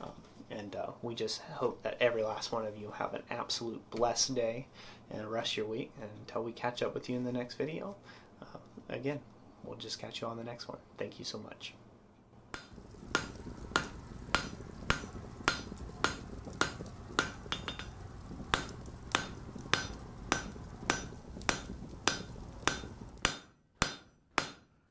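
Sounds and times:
low steady rumble: 11.8 - 23.3
hammer striking an anvil: 12.6 - 18.0, 18.6 - 24.7.

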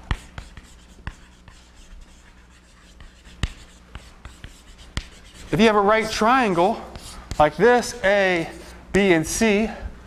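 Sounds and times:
chalk tapping on board: 0.0 - 5.6, 6.9 - 8.0
chalk scratching on blackboard: 0.0 - 8.8.

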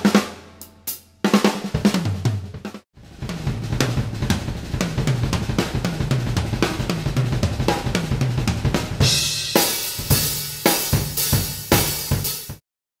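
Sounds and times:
drum kit playing: 0.0 - 12.6.

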